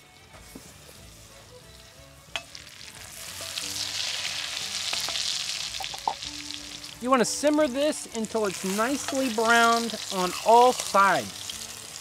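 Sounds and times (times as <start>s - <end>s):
meat sizzling in butter: 0.4s - 12.0s.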